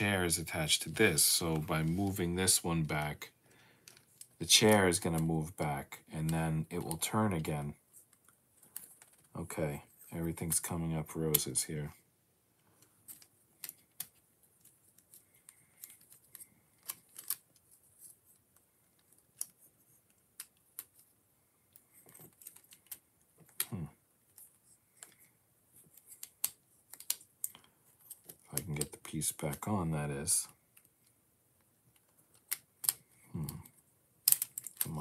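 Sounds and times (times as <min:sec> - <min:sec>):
plastic building blocks clicking: 0:12.8 - 0:17.6, 0:21.7 - 0:23.8, 0:25.9 - 0:29.7, 0:31.9 - 0:35.0.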